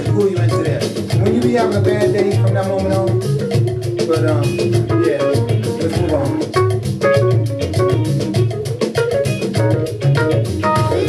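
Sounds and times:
bass: 0.0s - 11.0s
drums over a steady beat: 0.0s - 11.0s
plucked guitar: 0.0s - 11.0s.

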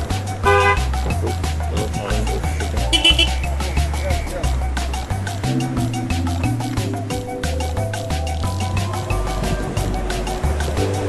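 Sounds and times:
music with heavy bass beat: 0.0s - 11.0s
car horn toot: 0.4s - 0.9s, 2.9s - 3.5s.

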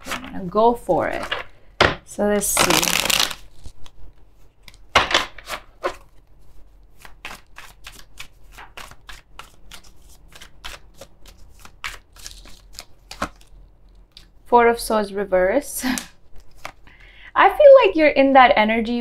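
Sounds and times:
cards being shuffled: 2.4s - 14.3s, 16.3s - 16.8s.

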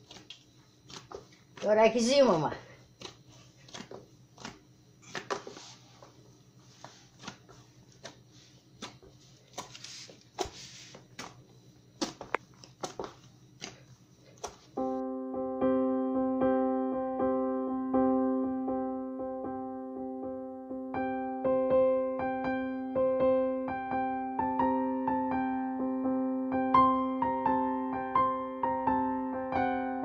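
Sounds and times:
hands kneading dough: 0.0s - 14.8s
electric piano music: 14.8s - 30.0s.

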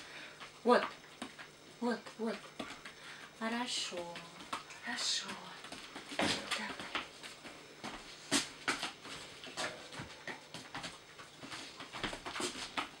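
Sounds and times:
puppy claws on hard floor: 0.4s - 13.0s
boot footsteps: 5.7s - 13.0s.

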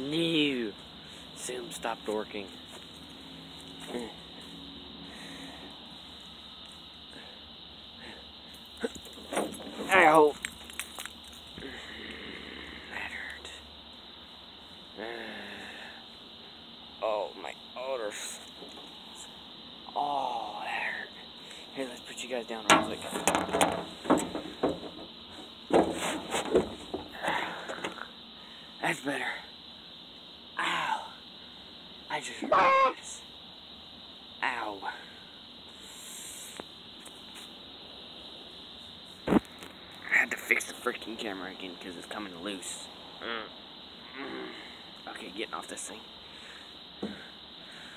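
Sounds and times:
faint background hiss: 0.0s - 47.9s
insects trilling: 0.0s - 47.9s.

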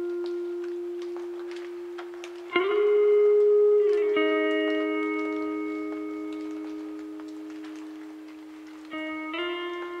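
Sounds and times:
clean electric guitar: 0.0s - 10.0s.

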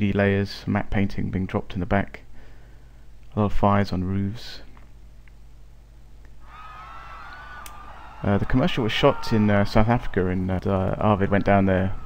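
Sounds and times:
crowd screaming: 6.4s - 12.0s.

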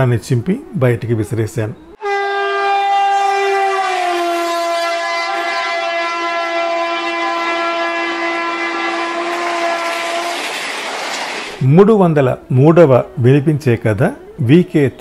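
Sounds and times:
train horn blast: 2.0s - 11.2s
moving train rushing: 7.0s - 11.9s.

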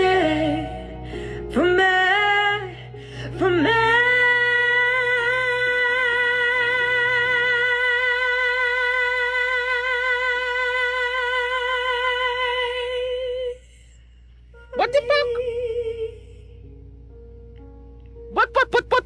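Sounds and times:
woman singing: 0.0s - 13.6s, 14.6s - 16.7s
soft backing track: 14.3s - 19.0s.

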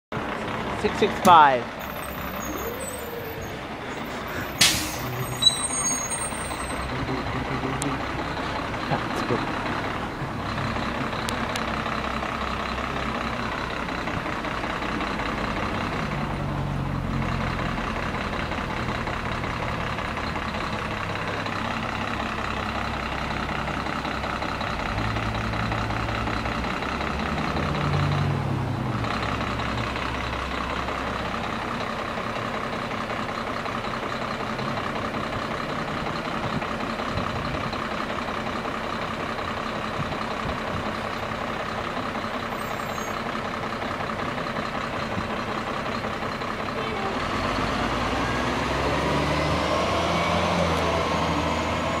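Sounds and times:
bus drivetrain whine: 0.1s - 52.0s
bus engine running: 0.1s - 52.0s.

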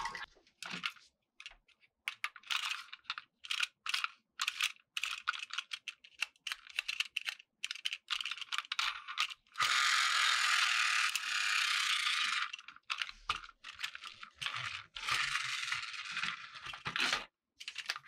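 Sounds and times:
plastic toy clicks and rattles: 0.2s - 18.0s
rasping ratchet-like whirr: 9.6s - 12.6s, 14.5s - 16.6s.

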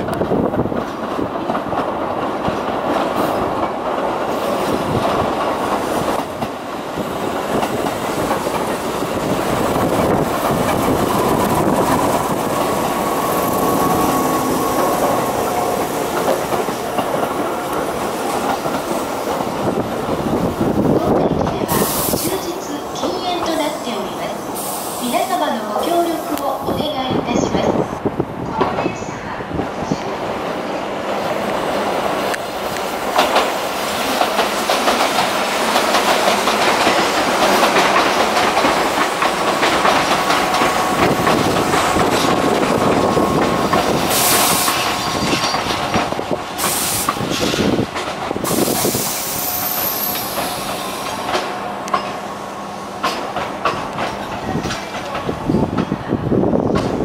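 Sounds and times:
wheels clacking over rail joints: 0.0s - 21.8s, 31.1s - 49.2s, 49.9s - 52.3s, 53.0s - 57.0s
train rumble: 0.0s - 57.0s.

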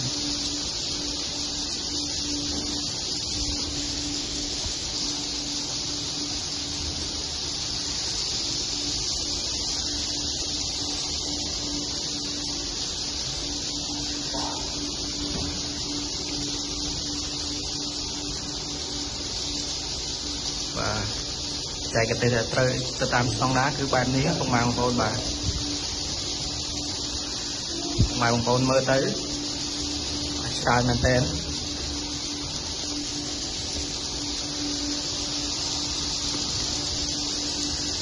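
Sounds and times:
flock of birds twittering: 0.0s - 38.0s
low steady hum: 0.0s - 38.0s.

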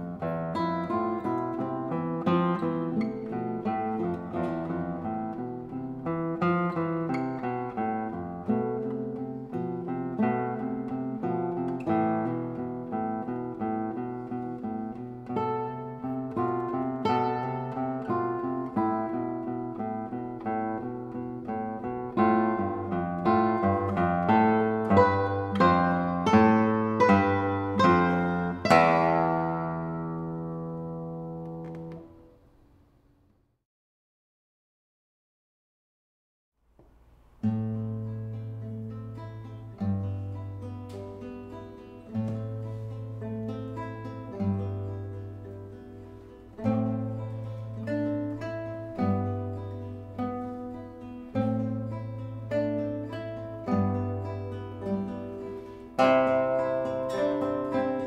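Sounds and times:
classical guitar duet: 0.0s - 33.0s, 36.7s - 58.0s.

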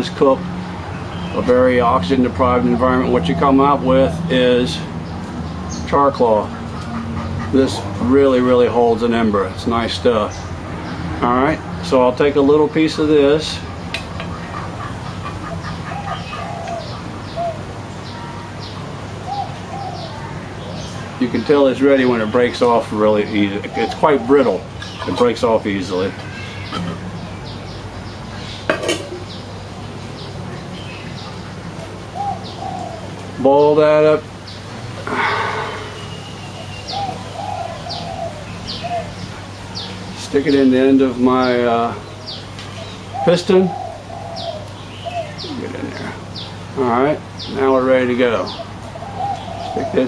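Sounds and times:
lower bird calls: 13.1s - 27.8s, 30.2s - 50.0s
dove cooing: 14.1s - 18.2s, 31.8s - 33.2s, 35.0s - 39.2s, 43.1s - 46.3s, 48.5s - 50.0s
high falling bird chirps: 34.5s - 38.8s
bird chirping high: 34.5s - 46.6s.

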